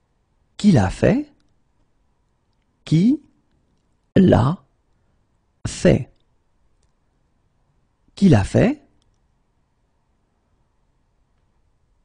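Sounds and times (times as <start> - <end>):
spoken word: 2.9 - 3.4.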